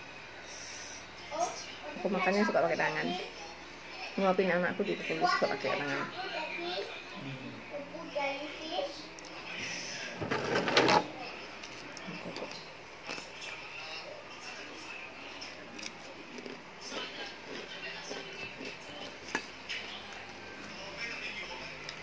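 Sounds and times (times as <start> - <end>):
faint voices: 0.4 - 22.0
scraping rustle of food on plate: 9.7 - 11.1.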